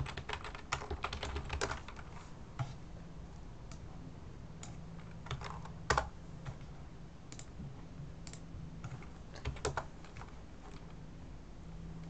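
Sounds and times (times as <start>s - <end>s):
computer keyboard typing: 0.0s - 2.2s, 4.6s - 6.7s, 7.3s - 7.6s, 8.2s - 11.0s
steady low hum: 0.0s - 12.0s.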